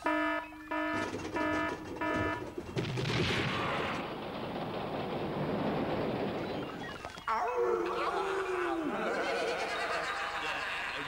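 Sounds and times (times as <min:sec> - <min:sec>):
loud rushing rattling noise: 0:01.0 - 0:07.0
cartoon voice laughing: 0:08.8 - 0:11.0.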